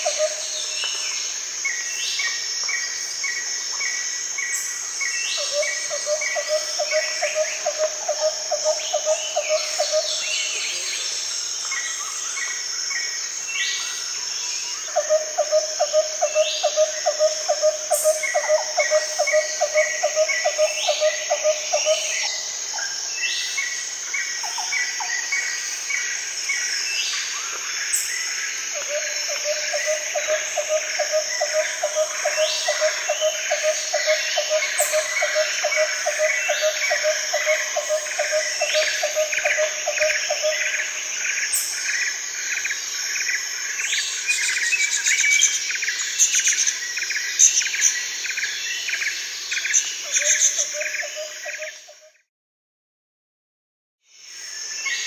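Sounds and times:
insects droning: 0.0 - 52.2, 54.1 - 55.0.

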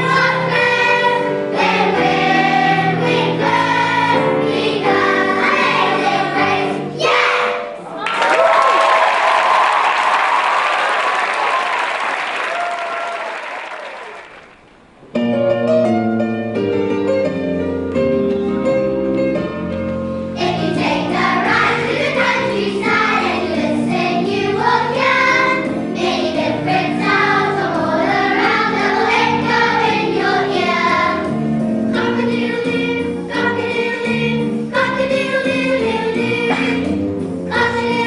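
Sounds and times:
children's choir singing: 0.0 - 8.0, 20.4 - 31.4, 32.0 - 36.9, 37.5 - 38.0
instrumental accompaniment: 14.6 - 38.0.

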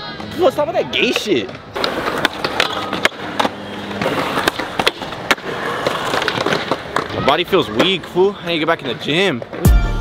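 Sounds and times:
skateboard wheels rolling on concrete: 0.0 - 10.0
skateboard clacks: 0.2 - 9.6.

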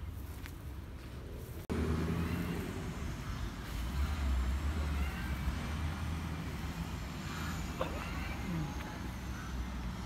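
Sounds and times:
motor vehicle engine rumble: 0.0 - 10.0
outdoor background noise: 0.0 - 10.0.

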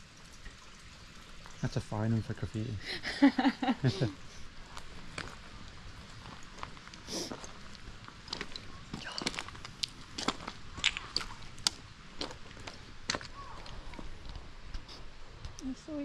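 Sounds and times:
footsteps on loose stones: 4.6 - 14.9
stones clicking together: 6.7 - 14.1.

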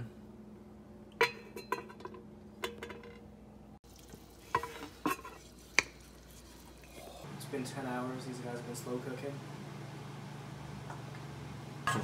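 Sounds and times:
pot and lid clinking: 1.1 - 3.4, 4.5 - 5.4.

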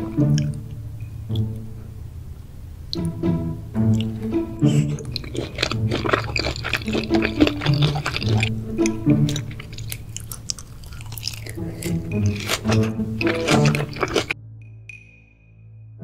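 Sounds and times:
wet chewing and mouth sounds: 0.0 - 1.6, 3.8 - 14.4
background music: 0.0 - 16.0
mouth clicks and smacks: 3.9 - 14.4.

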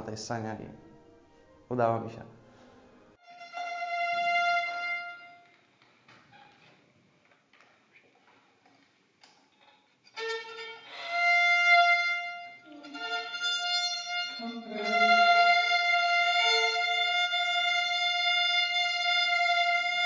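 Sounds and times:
two violins playing folk tune: 3.2 - 5.5, 10.1 - 20.0.

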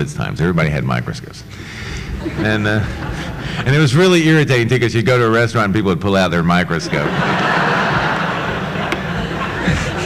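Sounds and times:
audience laughing: 2.0 - 4.0, 6.7 - 10.0.

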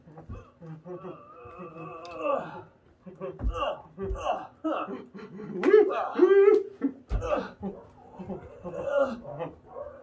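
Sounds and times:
person straining with effort: 0.1 - 2.8, 5.8 - 9.5.

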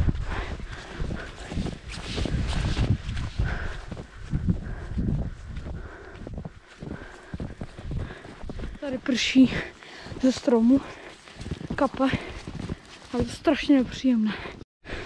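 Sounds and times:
wind on microphone: 0.0 - 8.8
footsteps in deep snow: 0.0 - 14.6.

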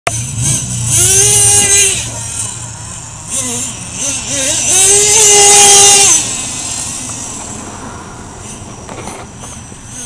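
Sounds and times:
small nitro engine buzzing: 0.1 - 10.0.

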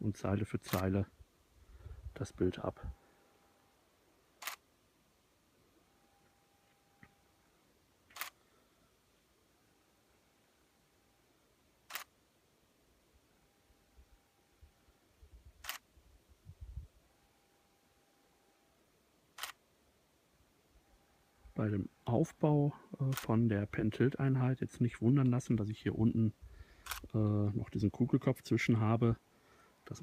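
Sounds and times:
faint steady whine: 0.0 - 30.0
camera shutter click: 0.7 - 0.9, 4.4 - 4.6, 8.1 - 8.4, 11.9 - 12.1, 15.6 - 15.9, 19.4 - 19.6, 26.8 - 27.1.

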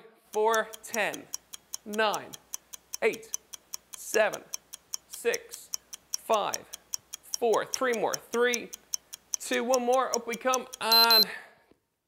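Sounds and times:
fast timer ticking: 0.2 - 11.3
man calling out: 1.9 - 2.4, 9.4 - 11.4.

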